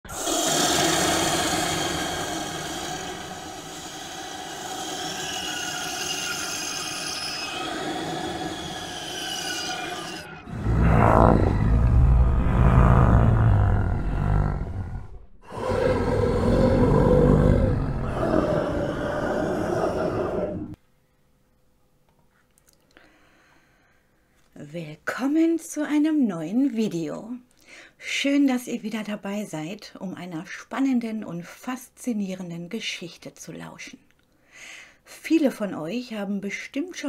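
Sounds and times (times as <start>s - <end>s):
drifting held tones: 0.1s - 20.8s
deep rumble: 10.2s - 19.6s.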